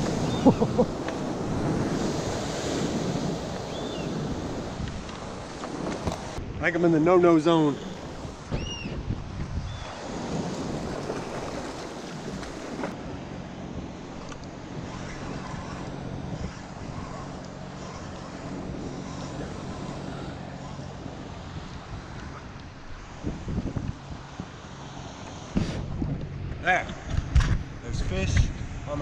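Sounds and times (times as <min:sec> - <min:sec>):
water slapping around a kayak: 0:00.0 - 0:06.5, 0:07.8 - 0:26.3
wind buffeting microphone: 0:00.0 - 0:29.0.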